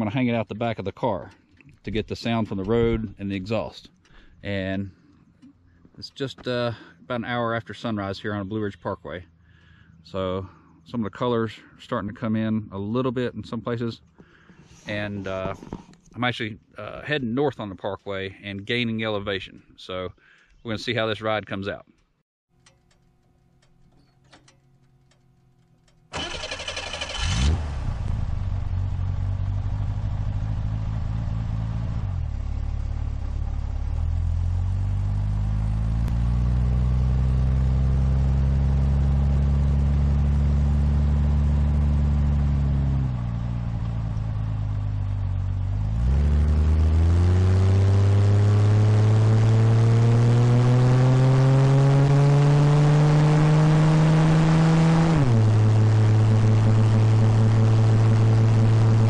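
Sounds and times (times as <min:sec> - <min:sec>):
car engine starting and revving: 0:26.1 - 0:59.0.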